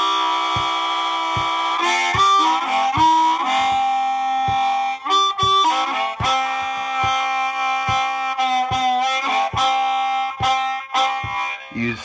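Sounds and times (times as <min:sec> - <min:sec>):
blues harmonica chord: 0:00.0 - 0:12.0
low thumps keeping time: 0:00.0 - 0:12.0.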